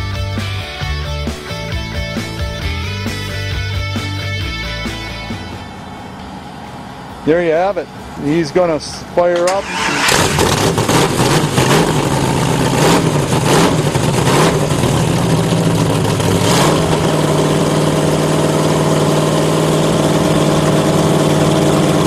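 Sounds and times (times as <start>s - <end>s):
boat engine revving and idling: 9.4s - 22.0s.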